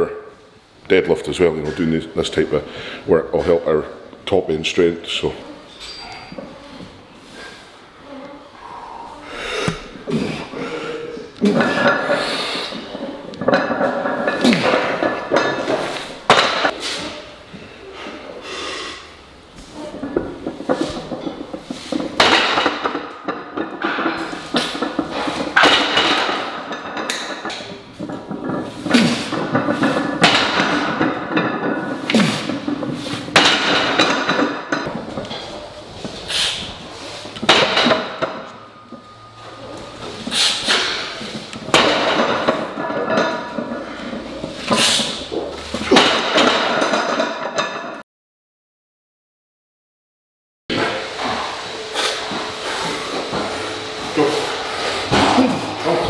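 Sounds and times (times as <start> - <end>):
barbell clanking and thudding: 11.4 - 16.8, 19.9 - 35.6, 37.4 - 48.0, 50.7 - 56.0.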